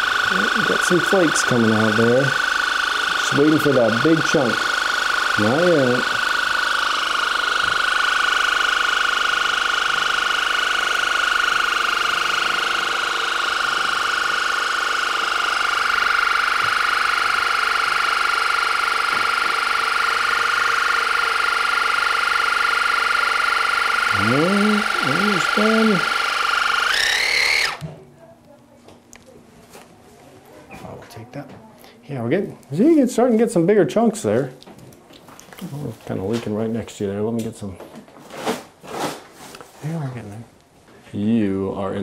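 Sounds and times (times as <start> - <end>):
high motor whine: 0.0 - 27.9.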